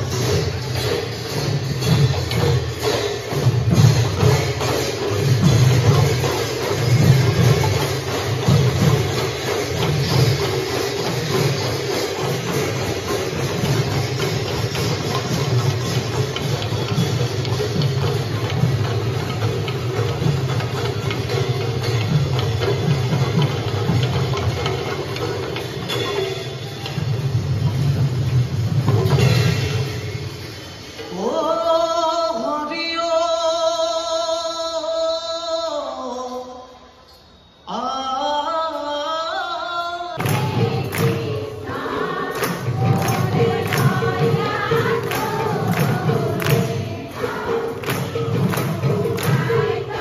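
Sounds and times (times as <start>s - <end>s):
massed barrel drums: 0.0s - 31.1s, 40.2s - 50.0s.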